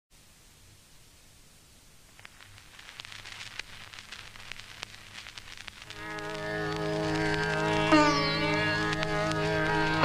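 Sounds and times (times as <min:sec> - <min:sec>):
record surface hiss: 0:00.1 - 0:10.0
record clicks and crackle: 0:00.9 - 0:10.0.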